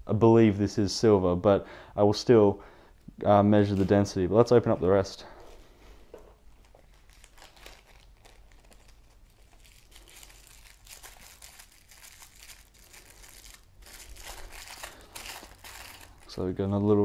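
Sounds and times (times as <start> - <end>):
plastic and paper crinkling: 3.6 - 4.2, 6.5 - 17.0.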